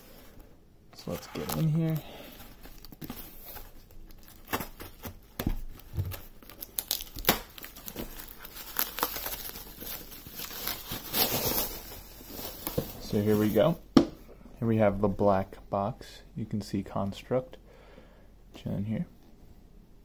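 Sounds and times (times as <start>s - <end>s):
bubble wrap crinkling: 1.0s - 13.8s
cardboard and tape tearing: 2.8s - 12.8s.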